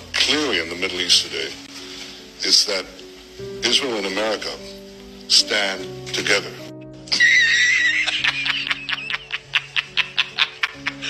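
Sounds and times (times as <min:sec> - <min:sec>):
background music with held notes: 0:00.0 - 0:11.0
man laughing hard: 0:07.1 - 0:11.0.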